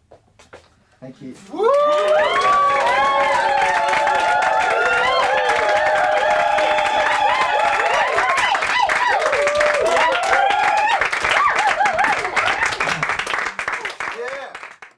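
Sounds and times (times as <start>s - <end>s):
audience cheering and whooping: 1.5s - 13.6s
audience applauding: 1.5s - 14.9s.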